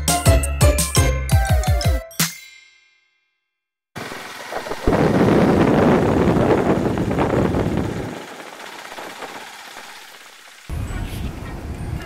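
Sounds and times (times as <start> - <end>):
wind rush: 4.0 - 9.4
motorcycle engine riding: 4.0 - 10.8.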